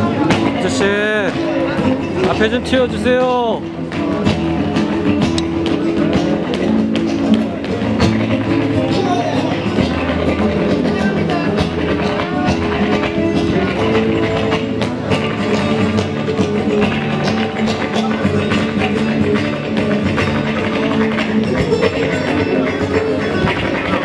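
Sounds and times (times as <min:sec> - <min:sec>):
flamenco guitar music: 0:00.0 - 0:24.0
sharp rhythmic taps: 0:00.0 - 0:24.0.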